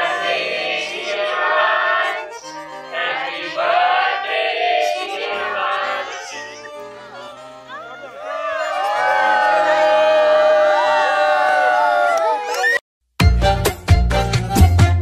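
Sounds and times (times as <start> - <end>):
people cheering and shouting: 5.6 - 12.8
background music with low notes: 13.2 - 15.0.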